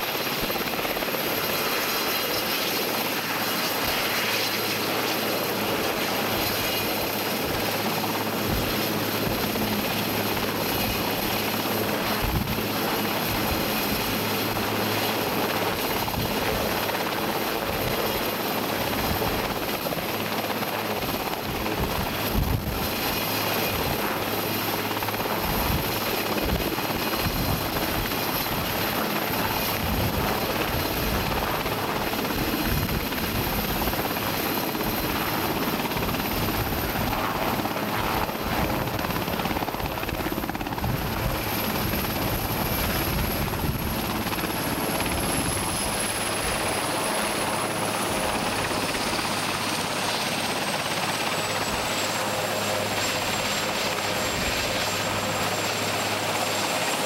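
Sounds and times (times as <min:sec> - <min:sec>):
helicopter rotor and turbine: 0:00.0 - 0:57.0.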